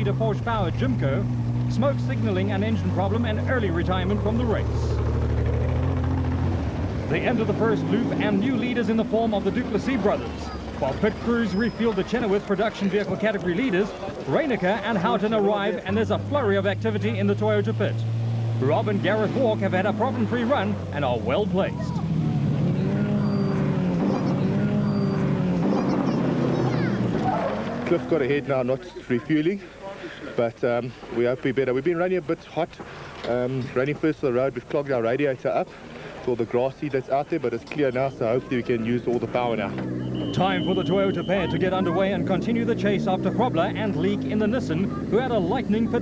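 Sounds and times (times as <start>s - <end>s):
buggy engine droning: 0.0s - 29.7s, 32.7s - 46.0s.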